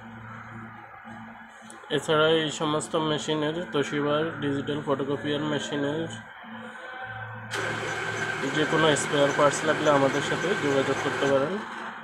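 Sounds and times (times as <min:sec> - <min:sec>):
photocopier humming: 0:07.5 - 0:12.0
man talking: 0:08.4 - 0:11.6.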